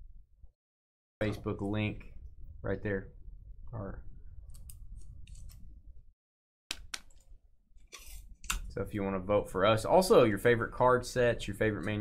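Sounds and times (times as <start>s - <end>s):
clicks and scrapes at a desk: 7.9s - 8.3s.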